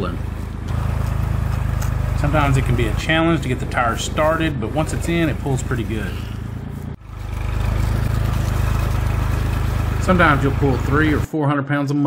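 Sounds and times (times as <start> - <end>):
tractor engine throbbing: 0.0 - 11.3.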